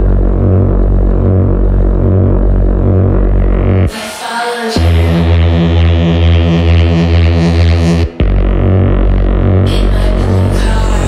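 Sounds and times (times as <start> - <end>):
buzzy bass synth drone pulsing: 0.0 - 11.0.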